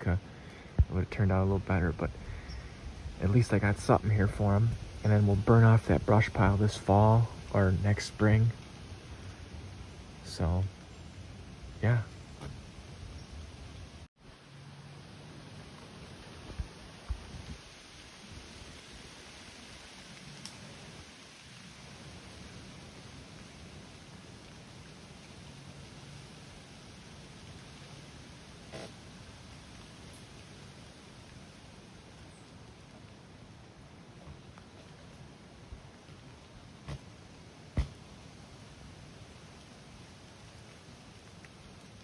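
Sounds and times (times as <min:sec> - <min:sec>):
outdoor background hiss: 0:00.0 - 0:42.0
faint tick: 0:20.4 - 0:20.6.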